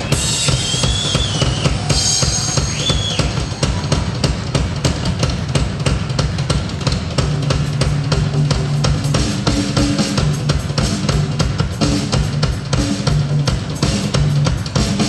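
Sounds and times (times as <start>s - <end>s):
fast loud drumming: 0.0s - 15.0s.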